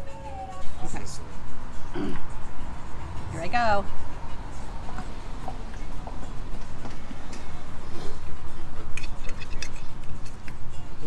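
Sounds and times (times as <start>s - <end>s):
outdoor background rumble: 0.0s - 11.0s
chewing: 8.8s - 10.6s.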